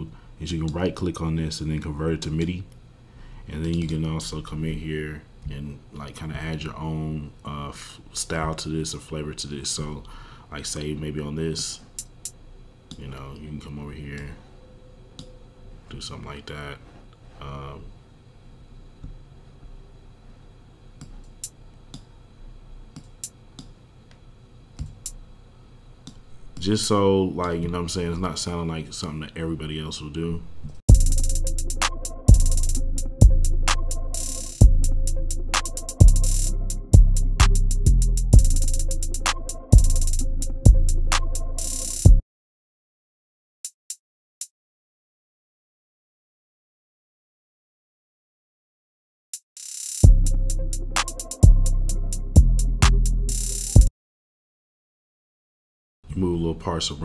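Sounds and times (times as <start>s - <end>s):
closed hi-hat hit: 30.8s - 42.2s, 49.4s - 53.9s.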